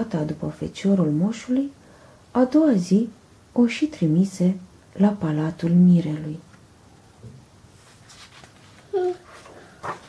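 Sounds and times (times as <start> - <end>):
paper rustling: 7.8 - 10.0.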